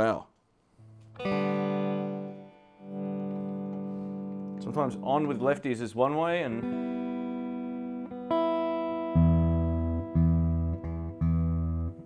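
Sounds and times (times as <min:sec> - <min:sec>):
clean electric guitar chords: 0:00.9 - 0:05.8, 0:06.4 - 0:12.0.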